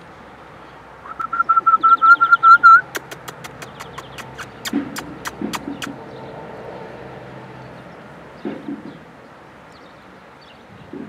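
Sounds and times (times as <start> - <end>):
high-pitched chirping squeaks: 1.1 - 6.0
sharp clicks: 2.8 - 6.0.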